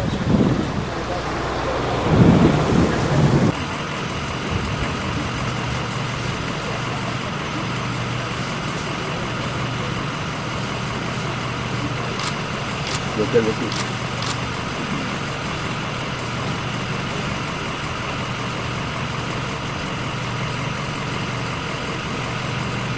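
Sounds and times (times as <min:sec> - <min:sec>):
low hum: 0:00.0 - 0:13.0
heavy low rumbling: 0:00.0 - 0:22.9.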